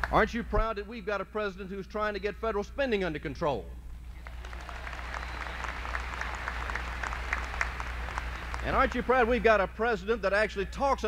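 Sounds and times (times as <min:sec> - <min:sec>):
low electrical hum: 0:00.0 - 0:11.0
large audience applauding: 0:04.2 - 0:09.4.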